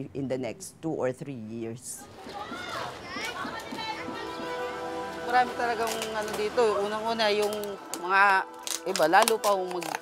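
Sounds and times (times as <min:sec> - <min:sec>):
children shouting: 0:02.0 - 0:04.7.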